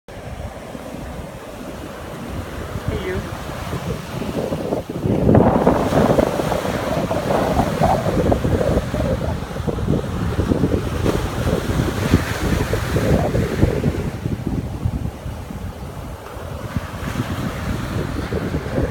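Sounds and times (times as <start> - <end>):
ocean surf breaking on beach: 0.1 - 18.9
wind rumbling on microphone: 0.1 - 18.9.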